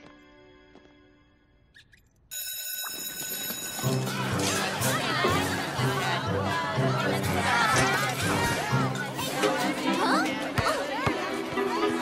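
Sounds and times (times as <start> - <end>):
music: 0.0 - 1.7, 3.6 - 12.0
electric school bell ringing: 2.3 - 4.9
crowd chatter: 3.6 - 12.0.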